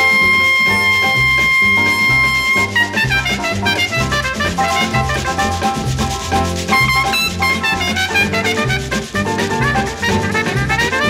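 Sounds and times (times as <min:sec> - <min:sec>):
bass: 0:00.0 - 0:11.0
brass lines: 0:00.0 - 0:11.0
latin percussion: 0:00.0 - 0:11.0.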